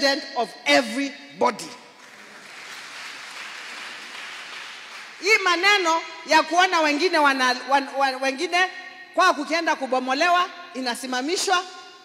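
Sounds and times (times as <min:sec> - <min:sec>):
audience applauding: 0:02.0 - 0:05.2.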